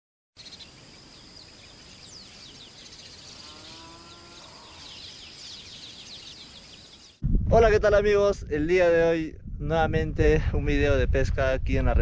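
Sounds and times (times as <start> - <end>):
lower bird call: 0.4 - 7.2
small birds chirping: 0.4 - 7.2.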